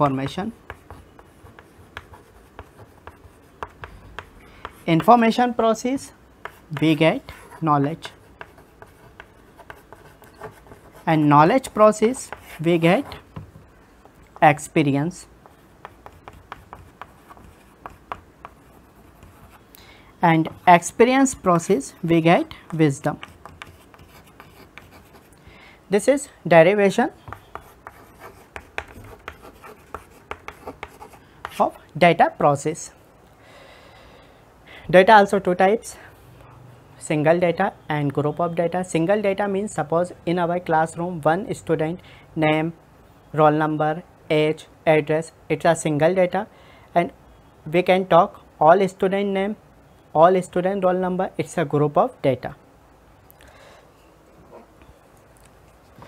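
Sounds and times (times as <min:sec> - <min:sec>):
chalk writing on chalkboard: 0:00.1 - 0:05.2, 0:06.4 - 0:14.2, 0:15.4 - 0:19.6, 0:22.4 - 0:25.4, 0:27.2 - 0:31.8.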